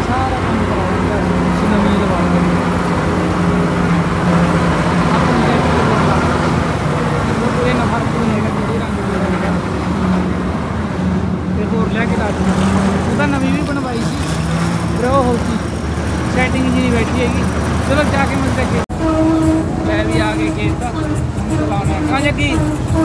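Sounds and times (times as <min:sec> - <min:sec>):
diesel engine droning: 0:00.0 - 0:23.0.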